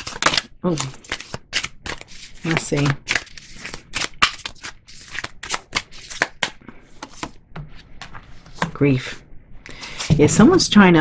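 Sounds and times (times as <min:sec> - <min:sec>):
cards being shuffled: 0:00.0 - 0:08.8.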